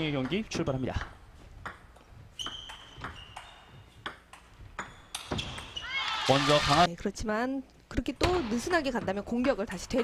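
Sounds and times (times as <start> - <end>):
ball bouncing on table: 0.2 - 5.8.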